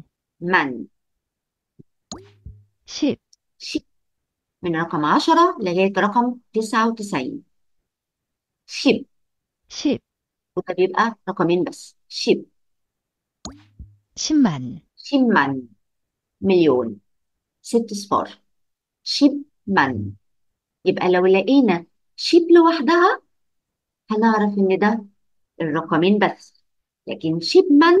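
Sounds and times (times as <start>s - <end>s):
computer swoop and pop effect: 2.1s - 2.6s, 13.5s - 14.0s
plop with upward pitch glide: 2.1s - 2.7s, 13.5s - 14.0s.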